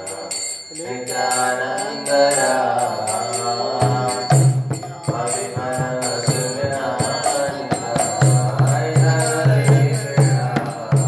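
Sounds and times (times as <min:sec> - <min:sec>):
man chanting devotional song: 0:00.0 - 0:11.0
small hand cymbals: 0:00.0 - 0:11.0.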